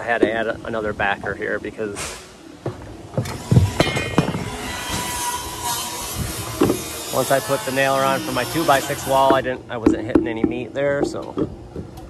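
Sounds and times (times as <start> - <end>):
wooden knocks of lumber: 6.6 - 6.8.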